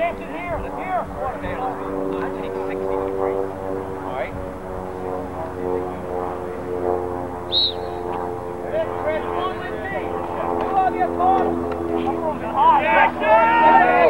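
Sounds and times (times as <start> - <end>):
engine drone: 0.0 - 14.0
referee's whistle blast: 7.5 - 8.0
people shouting: 12.2 - 14.0.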